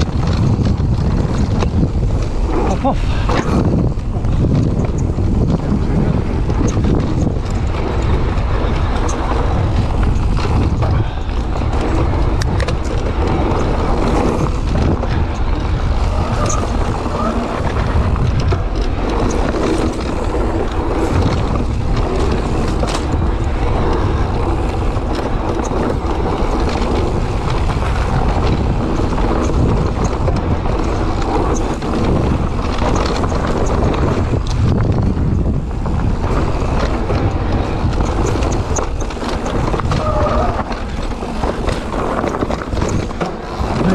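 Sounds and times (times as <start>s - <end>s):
bike clicks and rattles: 0.0s - 43.9s
bike tyre noise on dirt: 0.0s - 43.9s
wind buffeting microphone: 0.0s - 43.9s.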